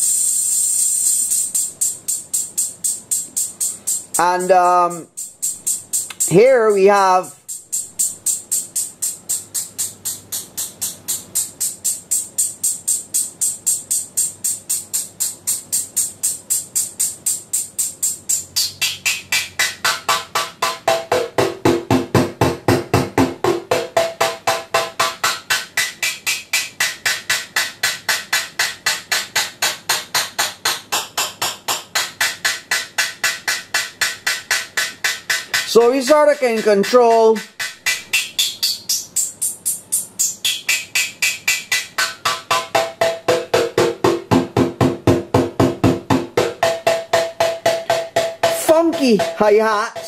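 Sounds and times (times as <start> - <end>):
synthesized hi-hat hits: 0.0 - 50.0.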